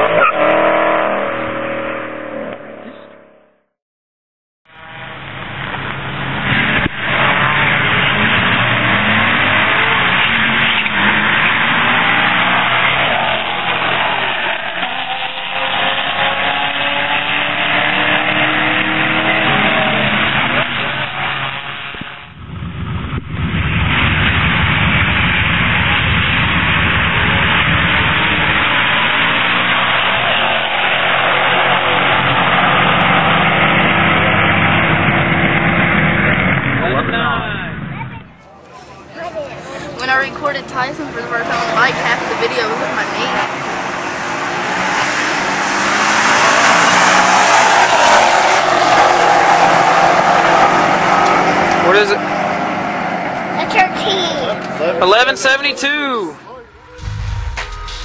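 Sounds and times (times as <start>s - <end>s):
car engine at full throttle: 0.0s - 3.7s, 4.7s - 58.0s.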